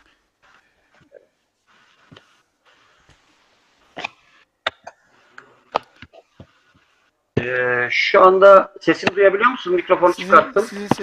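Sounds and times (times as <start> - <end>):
faint room noise on call line: 0.0 - 11.0.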